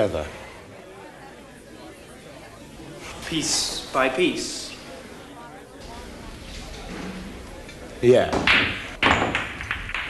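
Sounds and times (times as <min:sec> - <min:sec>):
background chatter: 0:00.0 - 0:09.3.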